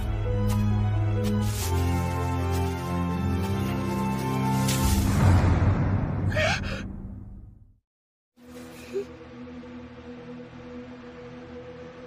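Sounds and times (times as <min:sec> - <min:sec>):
low dark background music: 0:00.0 - 0:07.6, 0:08.4 - 0:12.0.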